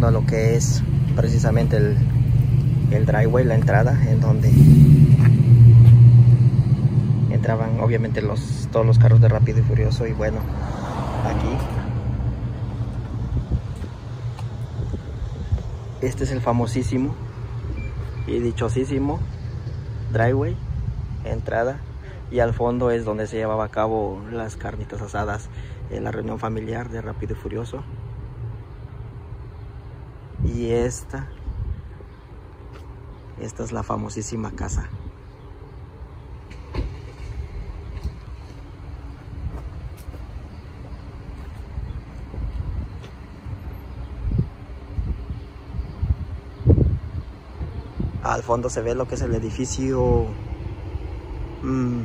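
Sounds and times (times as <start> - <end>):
wind rumble on microphone: 0.0 - 22.0, 30.2 - 32.3, 34.5 - 35.3, 36.8 - 52.0
traffic noise: 0.0 - 52.0.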